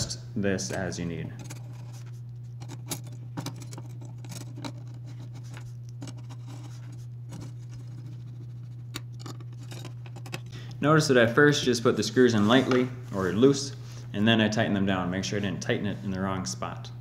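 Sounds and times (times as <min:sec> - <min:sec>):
steady low hum: 0:00.0 - 0:17.0
screwdriver scratching and metal clicks: 0:00.6 - 0:10.5.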